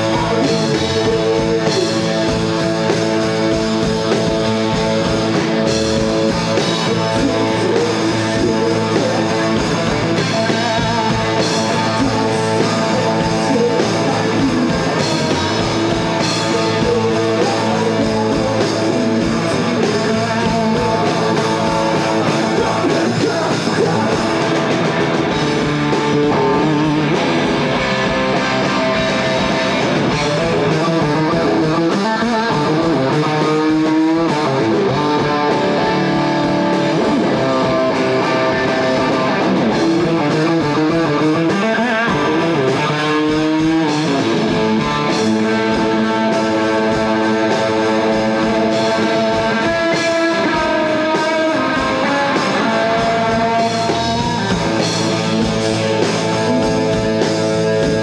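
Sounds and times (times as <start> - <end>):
distorted electric guitar: 0.0 - 58.0
drums: 0.0 - 58.0.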